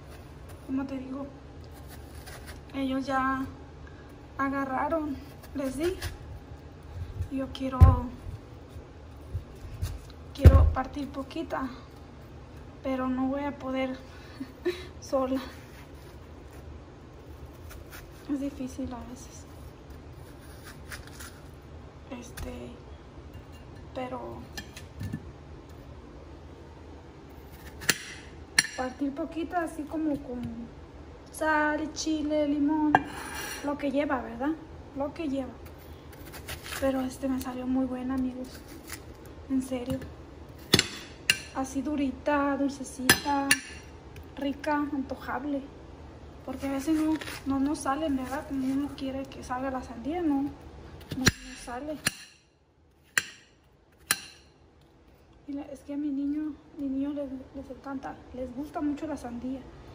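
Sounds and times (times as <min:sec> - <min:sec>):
knife cutting watermelon: 0:01.7 - 0:02.7, 0:05.2 - 0:06.2, 0:15.6 - 0:21.6, 0:36.1 - 0:39.2, 0:46.5 - 0:49.0.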